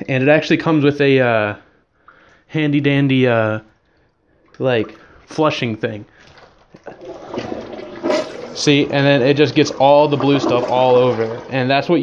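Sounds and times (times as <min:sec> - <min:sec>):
water rushing into toilet bowl: 0:03.8 - 0:12.0
toilet flush click: 0:07.0 - 0:11.9.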